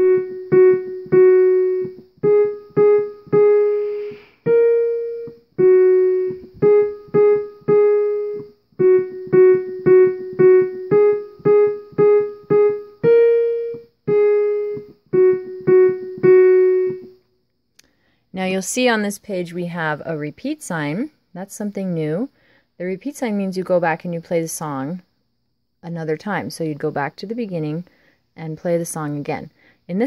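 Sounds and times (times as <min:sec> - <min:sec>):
digital piano melody: 0:00.0 - 0:17.2.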